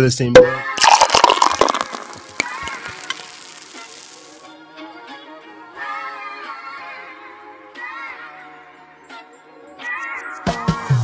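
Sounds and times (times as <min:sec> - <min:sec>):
hissing crackling splatter: 0:00.8 - 0:04.5.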